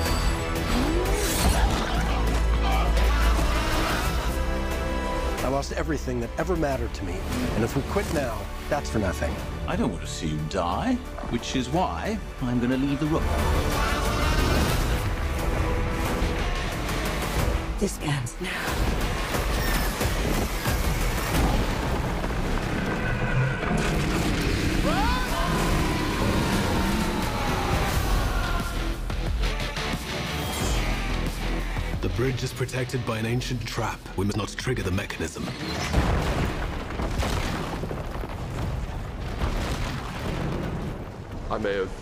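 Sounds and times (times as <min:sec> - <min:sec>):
trailer music: 0:00.0 - 0:37.1.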